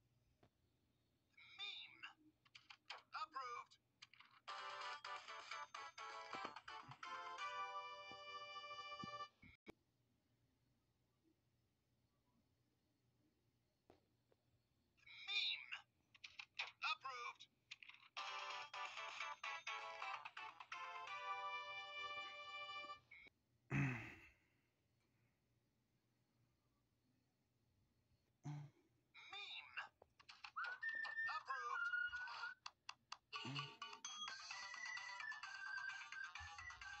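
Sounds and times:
tinny electronic ringtone jingle: 0:04.5 - 0:09.3, 0:20.6 - 0:23.0, 0:33.4 - 0:37.0
cartoon voice: 0:31.2 - 0:32.4.

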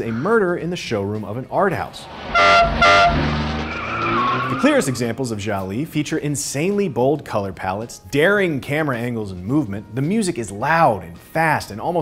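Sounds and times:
car engine running: 0:01.9 - 0:04.7
car horn honks: 0:02.2 - 0:04.7
tyres squealing: 0:02.3 - 0:05.2.

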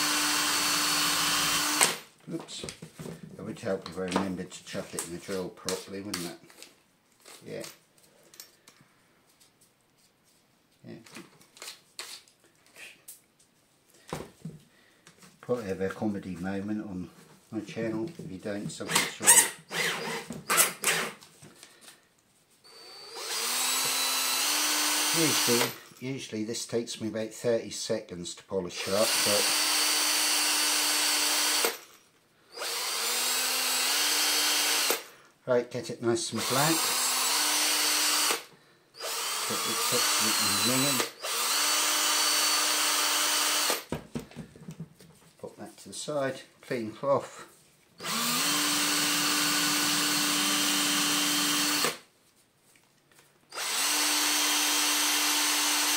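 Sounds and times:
cordless drill running: 0:00.0 - 0:02.1, 0:18.9 - 0:21.2, 0:22.7 - 0:25.8, 0:28.8 - 0:31.9, 0:32.5 - 0:35.1, 0:36.4 - 0:43.9, 0:48.0 - 0:52.1, 0:53.5 - 0:55.9.

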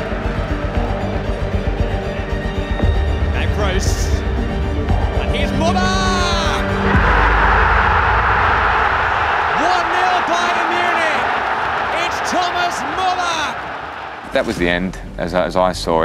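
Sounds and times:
background music: 0:00.0 - 0:16.0
stadium crowd roaring: 0:05.2 - 0:14.6
commentator shouting excitedly: 0:09.5 - 0:13.6.

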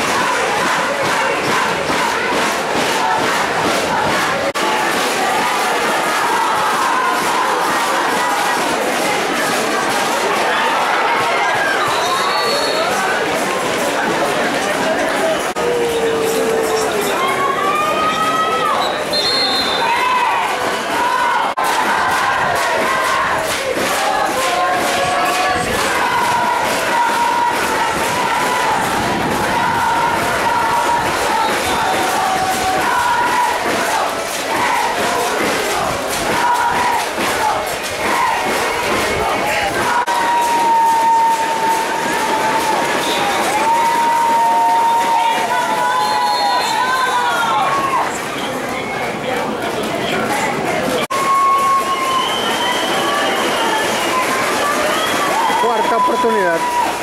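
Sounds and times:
crowd shouting and cheering: 0:00.0 - 0:57.0.

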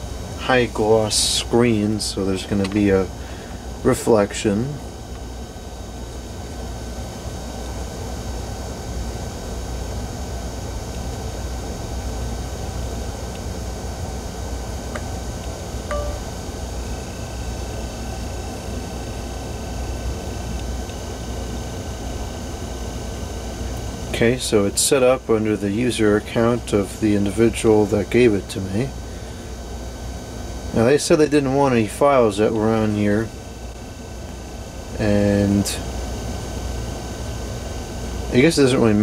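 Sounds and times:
low hum and hiss: 0:00.0 - 0:39.0
faint high steady tones: 0:15.8 - 0:17.2
faint short tones: 0:15.9 - 0:16.4.

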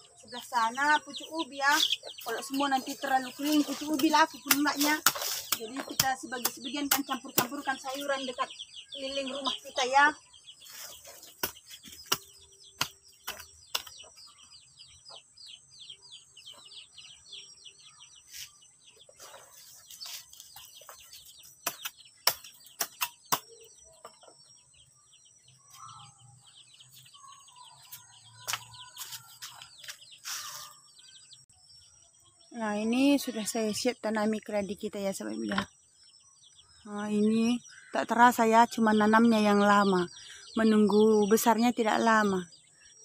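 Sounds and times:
small birds chirping: 0:00.0 - 0:43.0.

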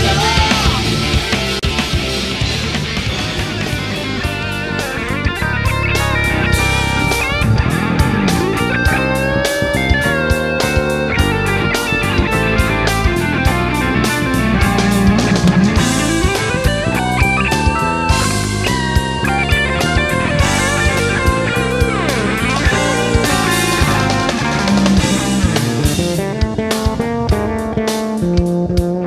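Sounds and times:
electric guitar lead: 0:00.0 - 0:29.0
rock drum beat: 0:00.0 - 0:29.0.

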